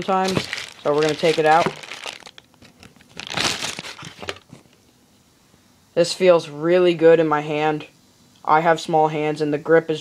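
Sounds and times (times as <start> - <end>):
plastic bag crinkling: 0.0 - 4.5.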